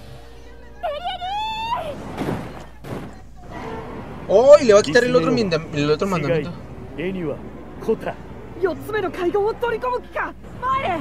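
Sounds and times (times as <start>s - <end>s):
high-pitched cry of pain: 0.8s - 2.1s.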